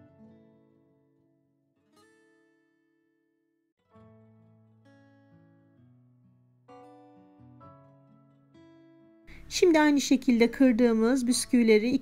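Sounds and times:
faint acoustic guitar music: 0:00.0 - 0:12.0.

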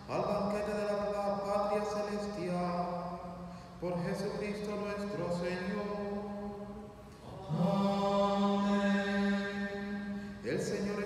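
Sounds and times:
man chanting on one tone: 0:00.0 - 0:11.0.

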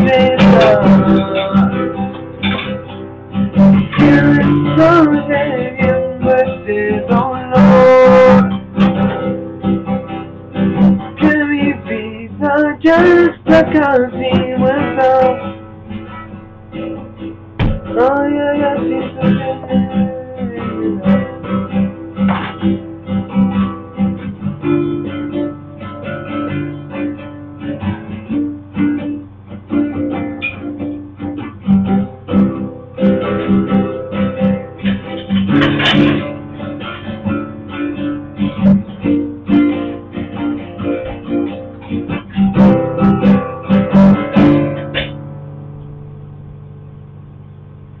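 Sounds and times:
acoustic guitar chords: 0:00.0 - 0:48.0.

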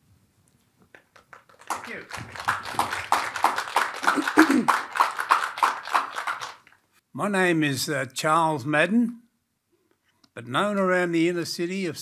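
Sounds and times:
audience applauding: 0:01.0 - 0:06.8.

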